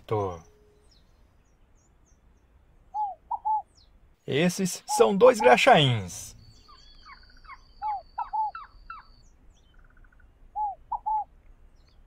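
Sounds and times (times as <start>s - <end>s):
birds calling with downward notes: 0.0s - 12.0s
bird trill: 0.1s - 4.0s, 4.6s - 12.0s.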